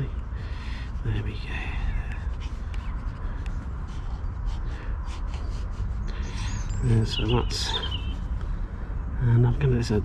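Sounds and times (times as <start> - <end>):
steady low rumble: 0.0 - 10.0
graphite scratching on paper: 0.9 - 6.7.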